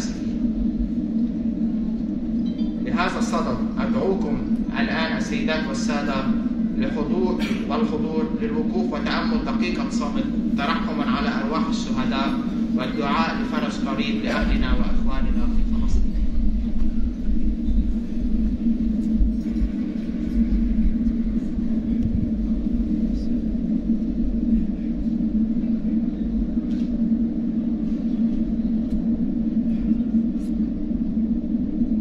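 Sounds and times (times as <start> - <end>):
low hum of a large hall: 0.0 - 32.0.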